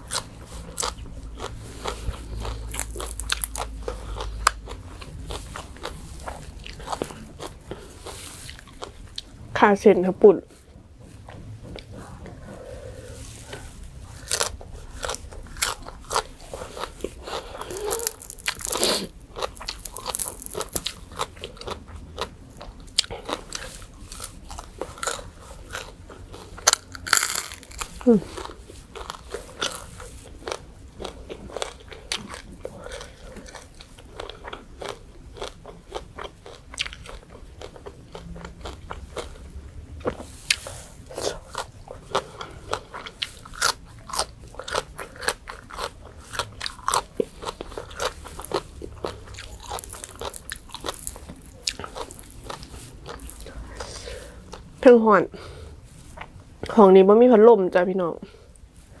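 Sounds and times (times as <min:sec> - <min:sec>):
crunching crispy fried food: 0:00.0 - 0:09.3, 0:13.2 - 0:53.9
wet chewing: 0:00.0 - 0:09.4, 0:11.1 - 0:54.7.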